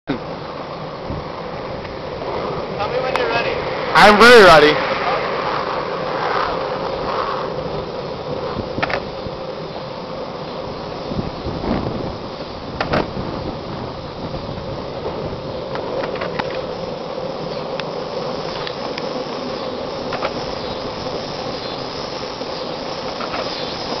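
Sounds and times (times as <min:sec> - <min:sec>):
longboard wheels rolling on pavement: 0:00.1 - 0:24.0.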